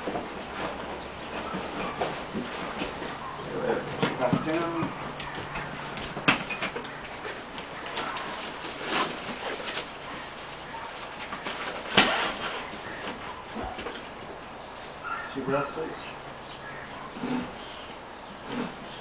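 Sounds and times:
rustling and scraping of straps: 0.0 - 14.3.

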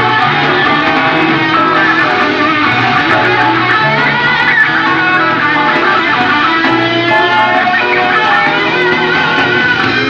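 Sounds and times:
bass guitar: 0.0 - 10.0
electric guitar melodic lines: 0.0 - 10.0.

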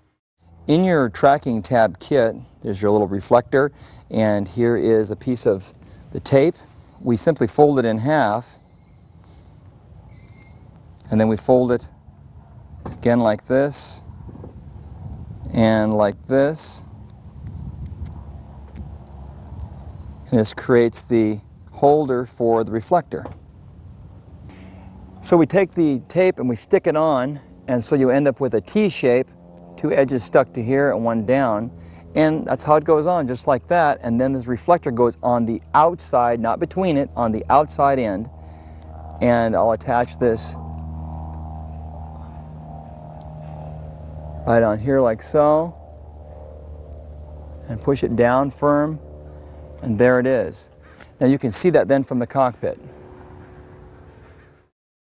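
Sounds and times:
steady low hum: 0.0 - 54.7.

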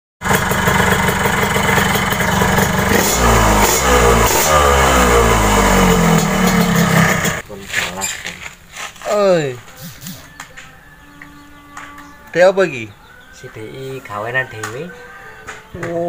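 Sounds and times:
two-stroke engine revving: 0.2 - 7.4.

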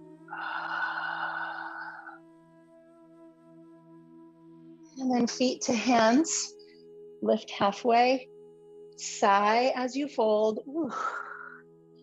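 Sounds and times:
soft ambient music: 0.0 - 12.0
person breathing out long: 0.3 - 2.2.

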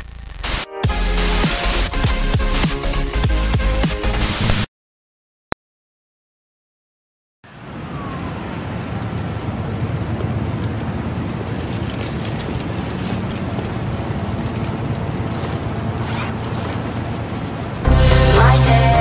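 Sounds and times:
sped-up electronic song: 0.5 - 4.6, 17.9 - 19.0
steady wash over low rumble: 7.6 - 19.0.

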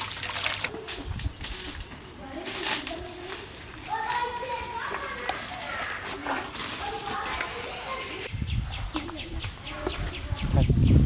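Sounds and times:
children talking and calling out: 0.7 - 10.9.

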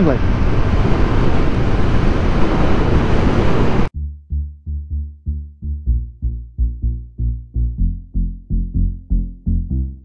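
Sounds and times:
wind and road noise: 0.0 - 3.9
electronic music with pulsing bass: 4.0 - 10.0.

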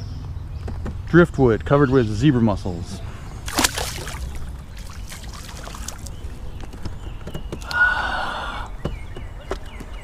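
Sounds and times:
low wind rumble: 0.0 - 10.0
knocks and handling on kayak: 6.0 - 7.8, 8.7 - 10.0.

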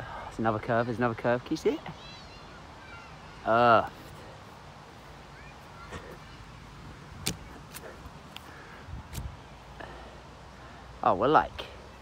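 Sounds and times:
wind buffeting microphone: 8.8 - 9.4.

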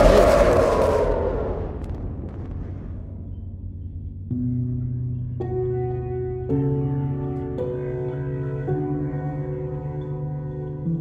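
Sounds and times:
low rumble of blast: 0.0 - 4.9.

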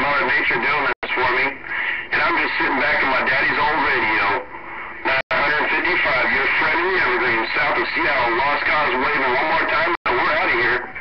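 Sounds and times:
garbled voice over radio speaker: 0.0 - 11.0
radio band noise: 0.0 - 11.0.

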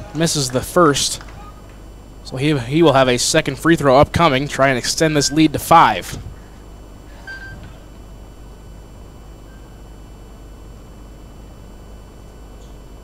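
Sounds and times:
low hum: 0.0 - 13.0.

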